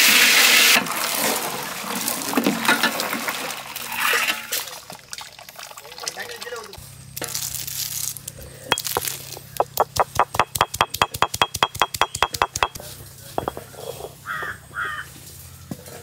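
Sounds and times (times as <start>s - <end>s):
stone roller crushing pods: 8.7s - 14.7s.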